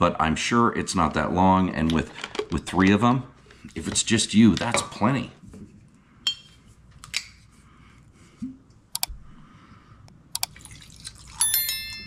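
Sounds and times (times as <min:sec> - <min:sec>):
glass bottle and tumbler clicking: 0:10.5 - 0:12.0.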